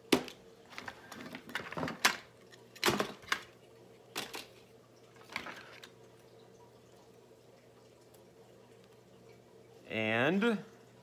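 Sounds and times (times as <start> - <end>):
faint steady hum: 0.0 - 11.0
objects rustling and knocking on desk: 0.1 - 3.4.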